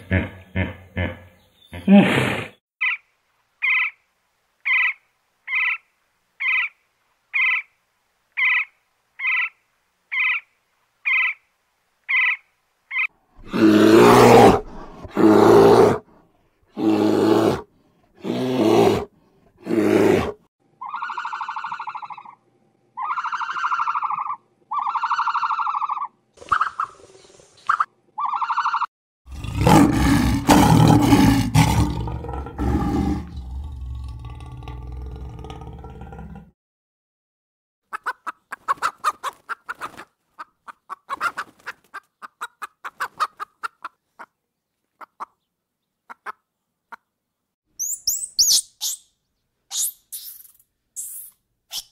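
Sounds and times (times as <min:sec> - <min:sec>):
woodpecker calling: 0:02.8 - 0:04.0, 0:04.7 - 0:05.8, 0:06.4 - 0:06.8, 0:07.4 - 0:07.7, 0:08.4 - 0:11.4, 0:12.1 - 0:13.1, 0:20.8 - 0:22.4, 0:23.0 - 0:27.0, 0:27.7 - 0:28.9, 0:47.8 - 0:49.1
lion roaring: 0:13.4 - 0:16.0, 0:18.2 - 0:20.4, 0:29.3 - 0:36.5
rough animal calls: 0:18.2 - 0:22.4, 0:23.0 - 0:27.0, 0:27.7 - 0:36.5
clear pitched animal calls: 0:20.8 - 0:22.4, 0:23.0 - 0:27.0, 0:27.7 - 0:28.9, 0:47.8 - 0:49.1.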